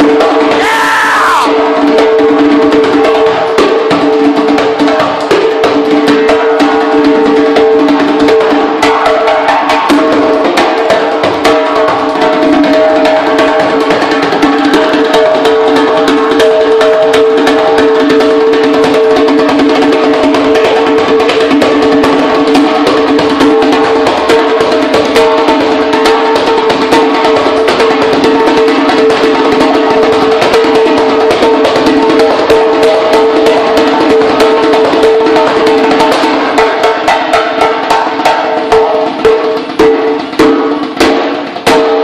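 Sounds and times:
djembe hand drumming: 0.0 - 42.0.

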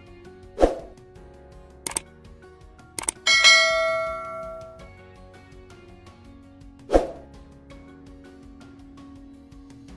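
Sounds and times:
faint background music: 0.0 - 9.9
short cursor clicks: 3.0 - 3.2
bright bell ding: 3.0 - 4.9.

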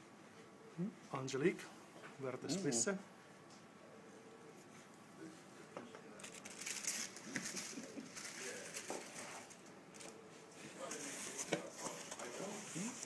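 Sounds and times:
bubble wrap crinkling: 6.1 - 10.2.

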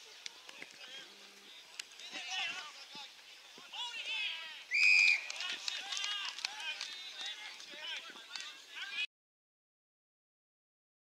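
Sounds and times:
referee whistle blast: 4.7 - 5.2.

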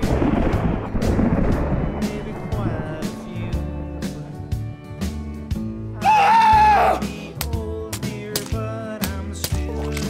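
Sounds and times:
thunderclap rumbling: 0.0 - 4.6.

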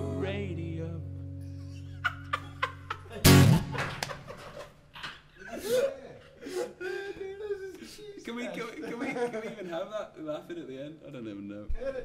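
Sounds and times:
men laughing: 1.5 - 10.7
acoustic guitar chord ringing: 3.2 - 3.8.

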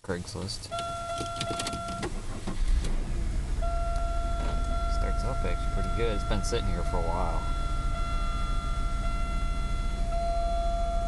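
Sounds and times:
car engine idling: 0.0 - 11.0
steady high-pitched tone: 3.6 - 11.0.

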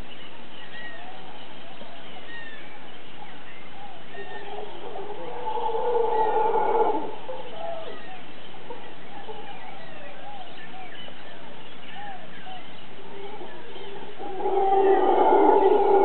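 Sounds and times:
bird calls and chirps: 0.0 - 16.0
howler monkey roar: 4.2 - 8.0, 13.0 - 16.0.

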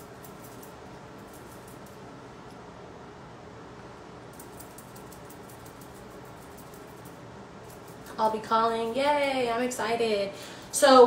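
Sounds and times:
makeup brush brushing face: 0.0 - 2.0, 4.4 - 9.1
steady room hiss: 0.0 - 11.0.

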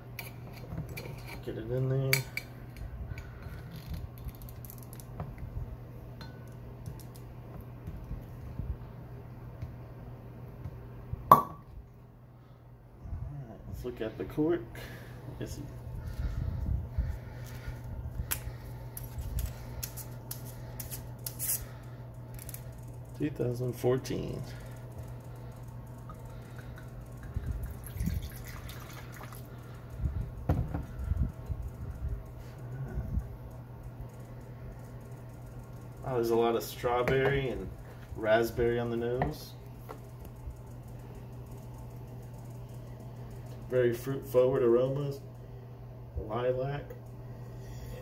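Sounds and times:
faint low hum: 0.0 - 48.0
cork popping from bottle: 11.3 - 11.6
wine pouring into a glass: 26.8 - 29.6.

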